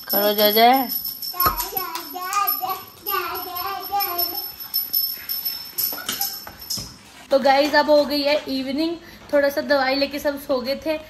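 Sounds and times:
small bell jingling: 0:00.0 - 0:07.2
child's sing-song voice: 0:01.4 - 0:04.5.

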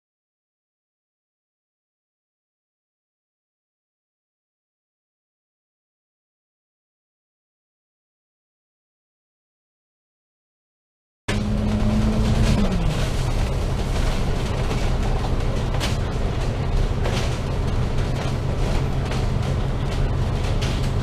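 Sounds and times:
bus body rattles: 0:11.3 - 0:21.0
bus diesel engine droning: 0:11.3 - 0:21.0.

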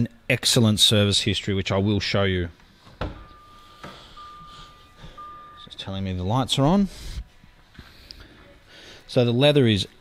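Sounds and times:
car warning chime beeping: 0:03.2 - 0:07.0.

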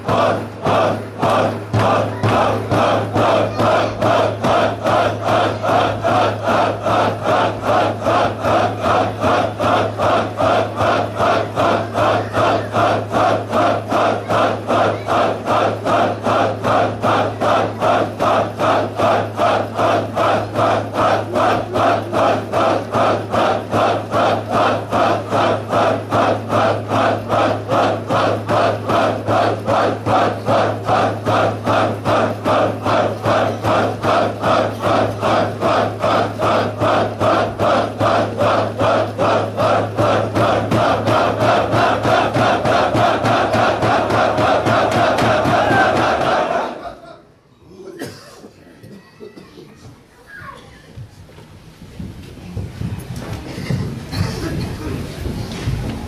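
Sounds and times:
men chanting in rhythm: 0:00.0 - 0:47.1.

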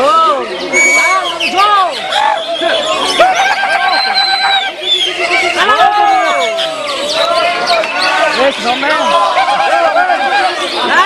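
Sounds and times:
other birds calling: 0:00.0 - 0:11.0
bird singing whistled notes: 0:00.4 - 0:03.2, 0:04.0 - 0:09.1.

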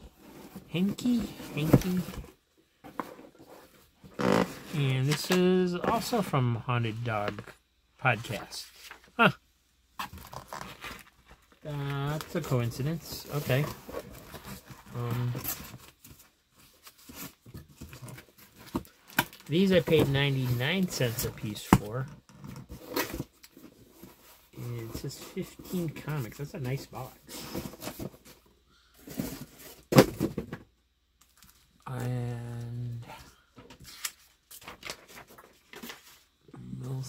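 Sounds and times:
paper and cardboard rustling: 0:00.1 - 0:06.3, 0:10.0 - 0:22.0, 0:22.6 - 0:30.5, 0:33.7 - 0:36.4
people talking: 0:00.7 - 0:02.3, 0:04.7 - 0:09.4, 0:11.6 - 0:13.8, 0:14.9 - 0:15.5, 0:19.5 - 0:22.1, 0:24.6 - 0:27.2, 0:31.9 - 0:33.3, 0:36.5 - 0:37.0.

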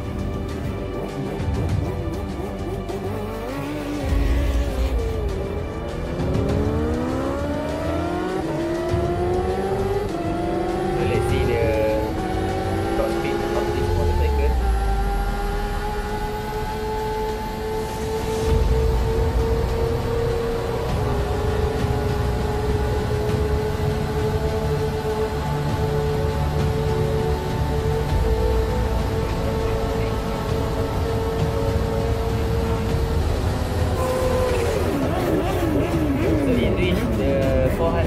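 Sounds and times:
motorcycle engine high whine: 0:00.0 - 0:36.8.

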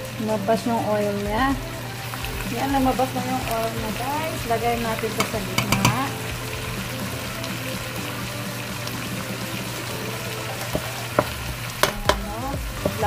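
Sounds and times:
chicken sizzling in a pot: 0:00.0 - 0:13.0
metal spoon clicking on pot: 0:05.2 - 0:06.1.

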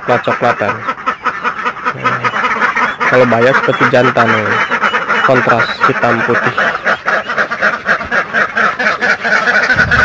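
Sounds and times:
ducks quacking: 0:00.0 - 0:10.0.

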